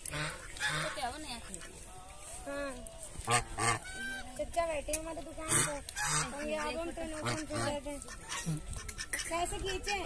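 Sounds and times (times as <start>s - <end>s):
geese honking: 0.0s - 2.0s, 3.2s - 4.4s, 5.4s - 10.0s.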